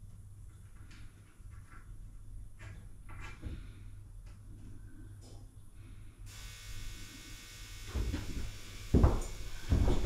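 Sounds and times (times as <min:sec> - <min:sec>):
steady electric buzz: 0:06.3 - 0:10.0.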